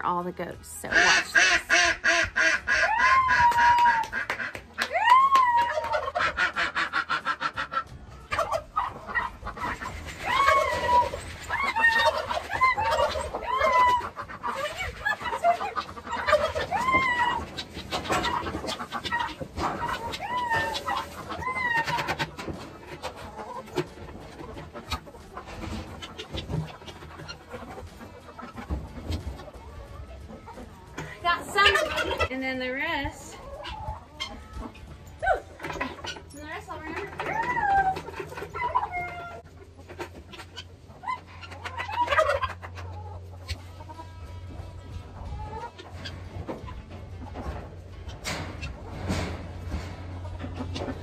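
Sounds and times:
farmyard animals calling: 0.0 - 51.0.

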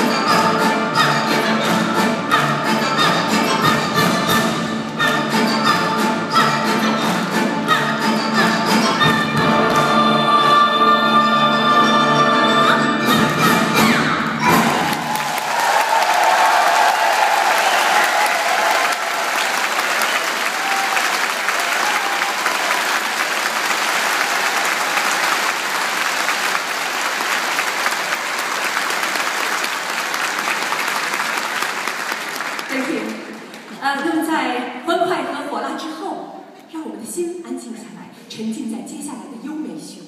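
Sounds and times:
audience applauding: 14.5 - 33.8.

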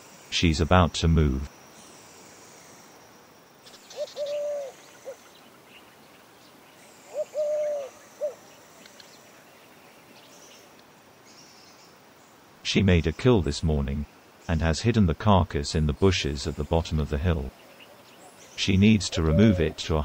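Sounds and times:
bird calling: 3.6 - 11.9, 16.4 - 20.0.

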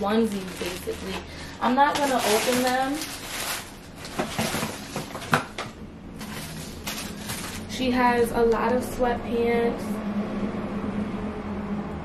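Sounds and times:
rustling packaged clothes: 0.0 - 8.0.

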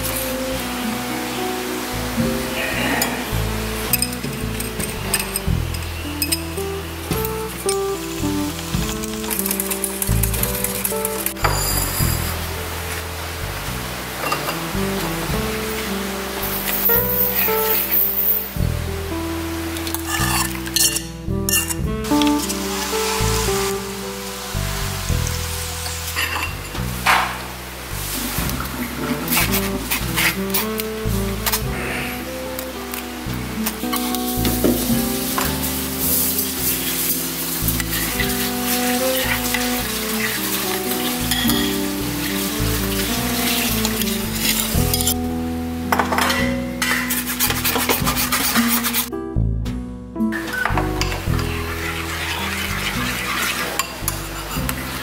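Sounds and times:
background music: 0.0 - 55.0
metal spoon scraping and clinking: 3.9 - 6.5, 20.1 - 21.8, 26.1 - 26.6, 40.2 - 45.2, 46.1 - 49.1, 51.4 - 54.8.

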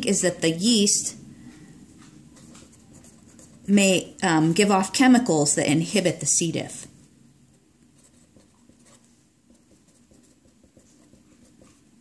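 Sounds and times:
pen scratching on paper: 2.4 - 3.8, 8.0 - 12.0.

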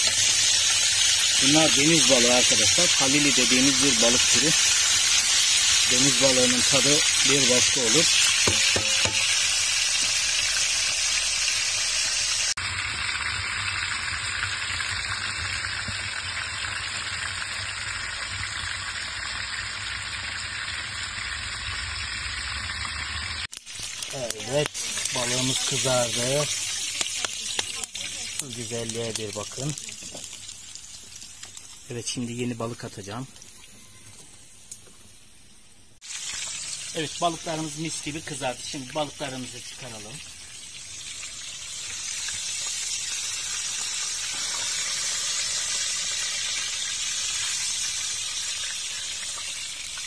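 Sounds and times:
fish sizzling in hot oil: 0.0 - 50.0.

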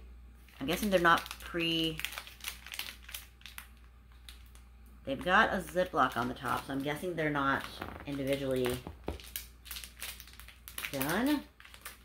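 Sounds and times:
plastic packet crinkling: 0.4 - 12.0.

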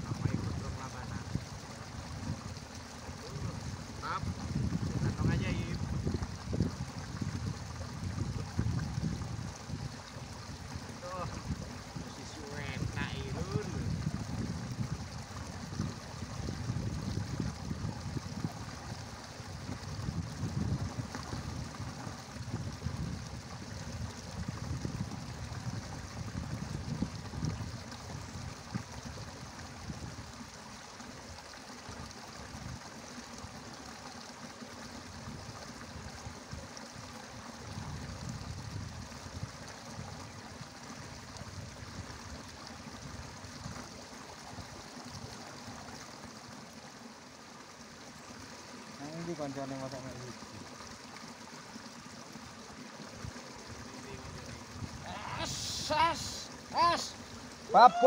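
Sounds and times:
wind gusts on microphone: 0.0 - 2.6, 3.2 - 18.9, 19.5 - 28.8
running water trickling: 0.0 - 58.0.

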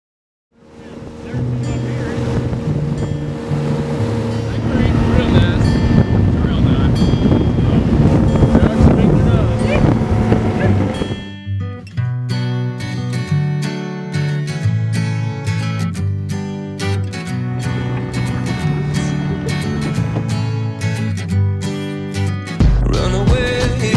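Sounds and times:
music of sustained low notes: 0.6 - 11.3, 16.3 - 22.1
motorboat running: 0.6 - 11.4, 16.2 - 23.9
voices: 0.7 - 2.5, 4.2 - 7.0, 7.6 - 11.0.

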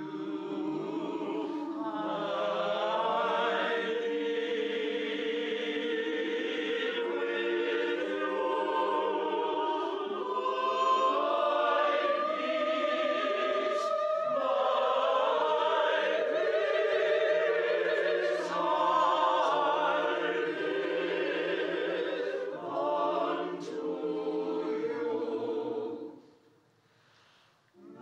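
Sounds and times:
mixed choir singing: 0.0 - 26.4, 27.7 - 28.0.

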